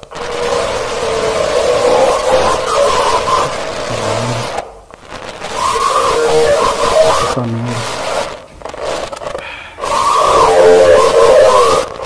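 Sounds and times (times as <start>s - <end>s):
television static hiss: 0.0s - 12.0s
wavering tones: 0.5s - 4.8s, 5.4s - 7.4s, 9.8s - 12.0s.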